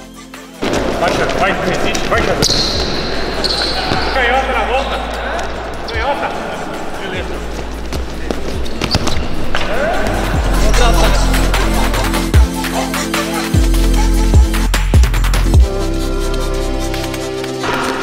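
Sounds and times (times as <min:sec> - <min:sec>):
balls thudding and bouncing on court: 0:00.6 - 0:04.2.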